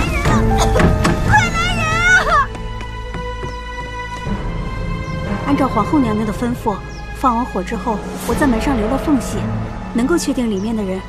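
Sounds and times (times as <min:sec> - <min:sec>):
dramatic orchestral score: 0:00.0 - 0:11.0
woman crying for help: 0:00.2 - 0:02.6.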